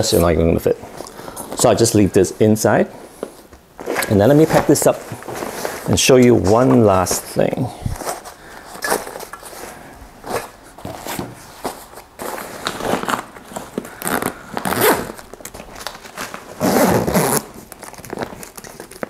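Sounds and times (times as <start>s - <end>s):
nylon bag rustling: 0.8s - 19.0s
zipper pulled: 14.0s - 15.2s, 16.6s - 17.6s.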